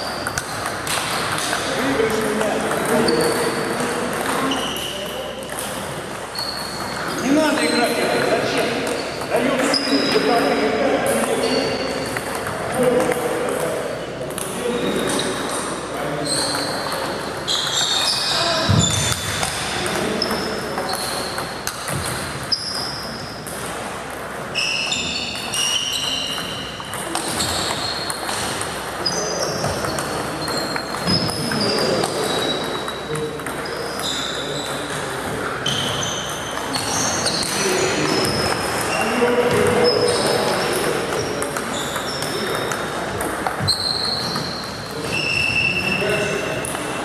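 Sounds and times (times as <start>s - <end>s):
table tennis balls clicking: 0.0s - 10.3s, 11.0s - 15.7s, 25.3s - 35.3s, 36.3s - 45.0s.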